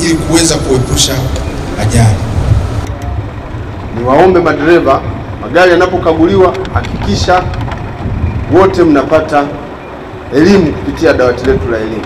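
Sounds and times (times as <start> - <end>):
bus engine idling: 0.0 - 12.0.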